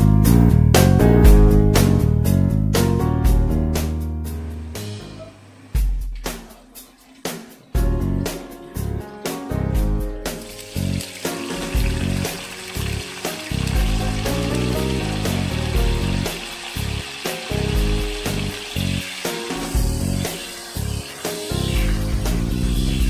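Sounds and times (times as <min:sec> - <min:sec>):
background music: 0:00.0 - 0:23.0
food sizzling in hot oil: 0:10.3 - 0:23.0.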